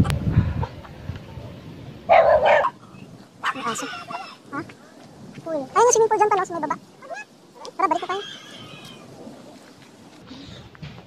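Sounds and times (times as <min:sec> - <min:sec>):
dog barking: 0:02.1 - 0:02.8.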